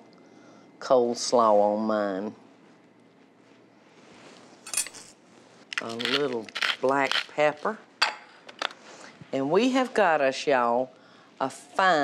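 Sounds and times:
metal spoon clink: 4.7s - 5.1s.

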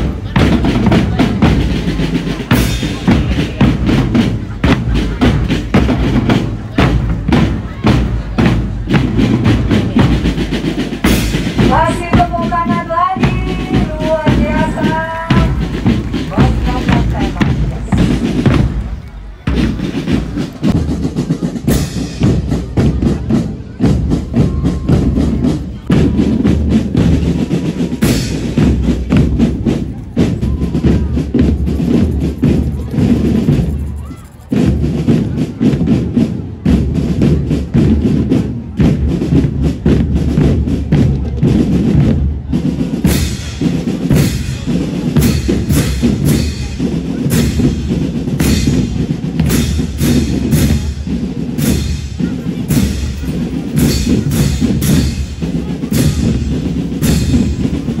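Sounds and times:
snare and bass drums beating: 0.0s - 58.0s.

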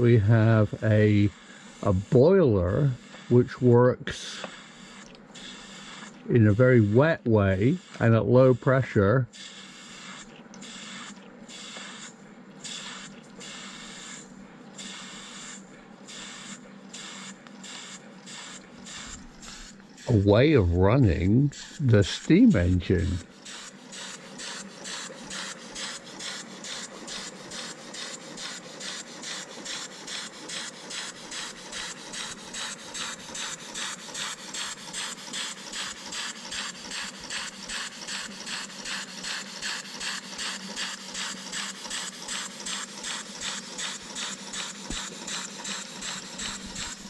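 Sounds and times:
steam engine exhaust chuffing: 0.0s - 47.0s.

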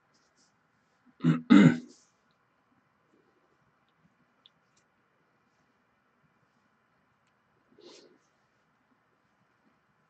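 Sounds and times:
man clearing his throat: 1.2s - 1.9s.

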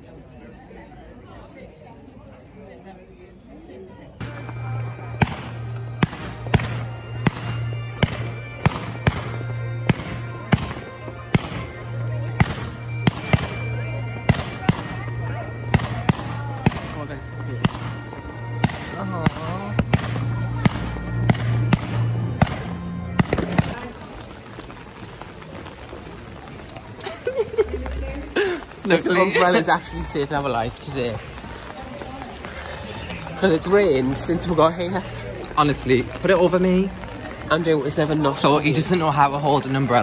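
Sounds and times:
fireworks bangs: 4.2s - 13.6s, 14.2s - 25.0s.

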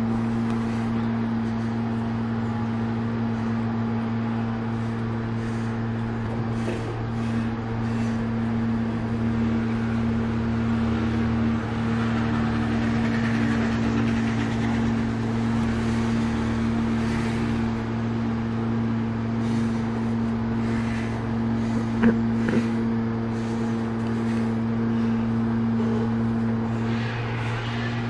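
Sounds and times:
low machine hum: 0.0s - 28.0s.

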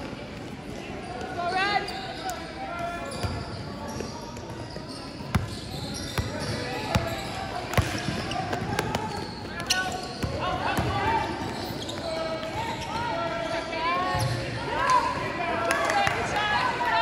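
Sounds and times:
sneaker squeaks: 1.2s - 14.5s
basketball bouncing on court: 3.2s - 12.6s.

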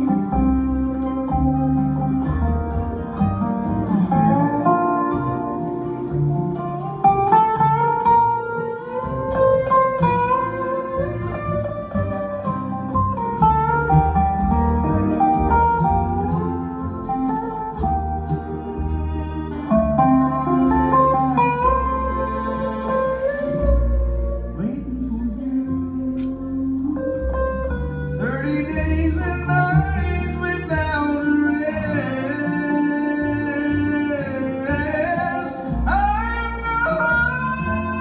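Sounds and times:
acoustic guitar: 0.0s - 38.0s
fiddle: 0.0s - 38.0s
mandolin: 0.0s - 38.0s
resonator guitar sliding notes: 0.0s - 38.0s
upright bass: 0.0s - 38.0s.

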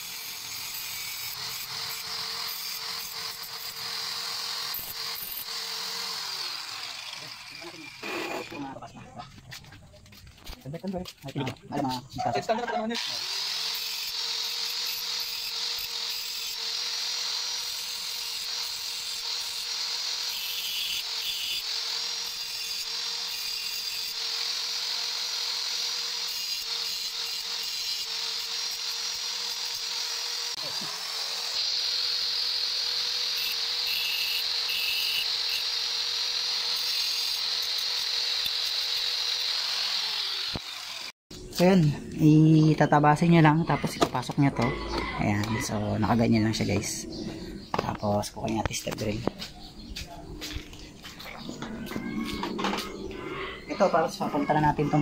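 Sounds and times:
angle grinder whining: 0.0s - 9.0s, 12.0s - 49.6s, 50.4s - 55.0s.

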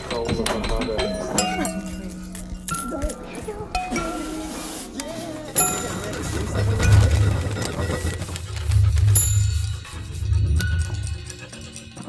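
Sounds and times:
kitchen clinks: 0.0s - 4.2s, 5.4s - 12.0s
low held tone: 8.6s - 12.0s.

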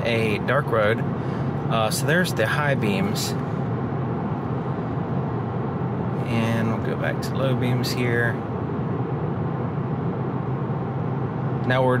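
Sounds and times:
road and tyre noise in car: 0.0s - 12.0s
person speaking: 1.6s - 3.4s.

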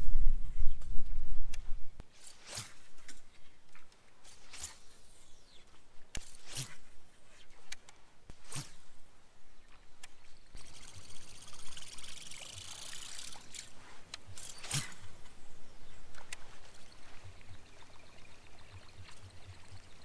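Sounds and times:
low hum: 4.3s - 20.0s
water trickling and splashing: 10.2s - 20.0s.

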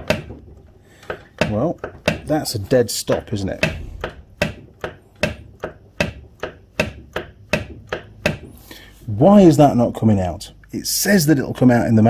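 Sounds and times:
sharp metal knocks: 3.5s - 8.5s.

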